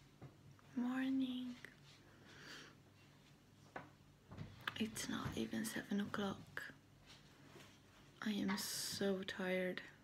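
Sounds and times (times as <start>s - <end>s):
woman speaking softly: 0.7s - 1.8s, 4.7s - 6.8s, 8.2s - 10.0s.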